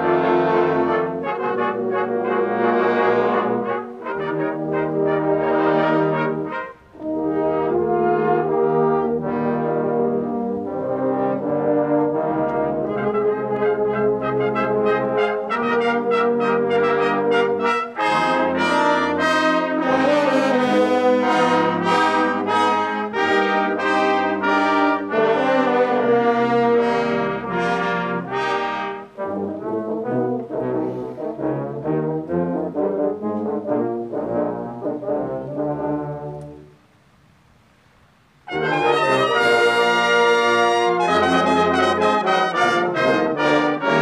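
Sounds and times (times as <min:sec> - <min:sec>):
brass choir playing chords: 0:00.0 - 0:36.8, 0:38.5 - 0:44.0.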